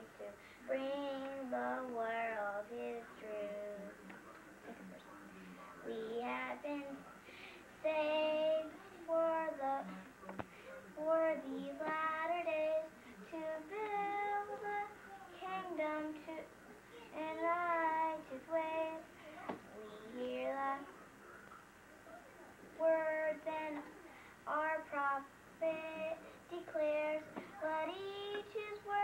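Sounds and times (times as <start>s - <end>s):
girl singing: 0.0s - 3.9s, 5.8s - 7.0s, 7.8s - 10.0s, 11.0s - 16.4s, 17.1s - 20.9s, 22.8s - 29.0s
girl breathing: 7.3s - 7.7s.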